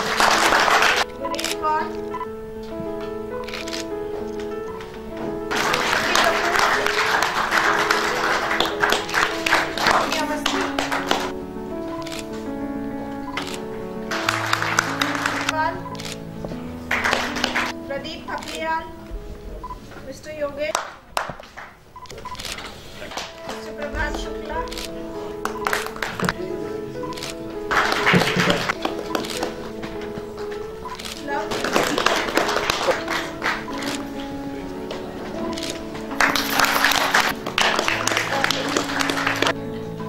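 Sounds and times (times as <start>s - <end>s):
audience applauding: 0.0s - 1.5s, 4.7s - 11.4s, 13.3s - 16.2s, 16.8s - 17.8s, 20.8s - 39.6s
person speaking: 0.0s - 3.8s, 4.5s - 21.1s, 22.1s - 40.0s
faint background music: 0.0s - 40.0s.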